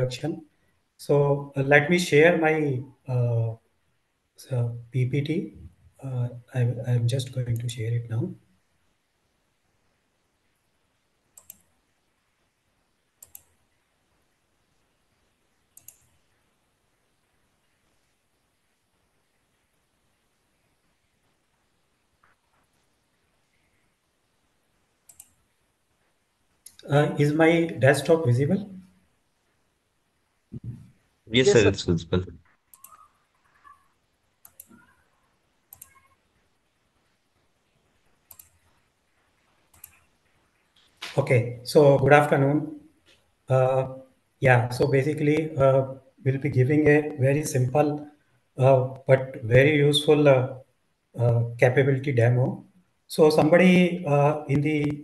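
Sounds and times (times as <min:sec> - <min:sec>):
computer mouse clicks: 0:11.3 - 0:11.7, 0:13.2 - 0:13.6, 0:15.8 - 0:16.2, 0:25.0 - 0:25.4, 0:32.7 - 0:33.8, 0:34.4 - 0:35.0, 0:35.7 - 0:36.2, 0:38.2 - 0:38.8, 0:39.7 - 0:40.9.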